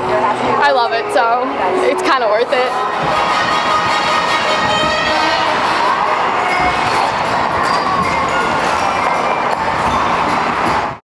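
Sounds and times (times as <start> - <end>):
skate blades scraping ice: 6.5 - 9.1.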